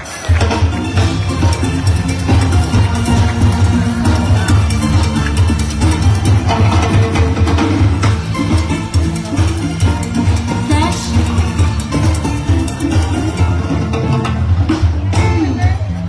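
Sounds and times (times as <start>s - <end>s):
heavy bass line: 0.0s - 16.0s
live band music with drums: 0.0s - 16.0s.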